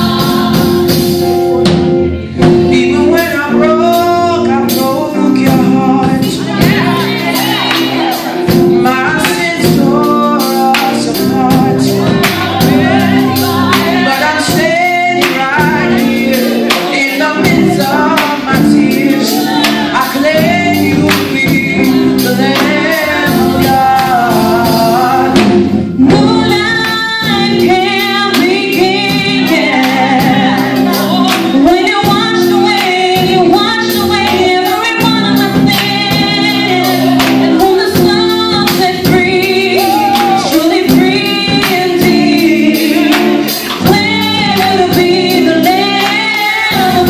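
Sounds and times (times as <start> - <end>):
group singing gospel: 0.0 - 47.0
instrumental accompaniment: 0.0 - 47.0.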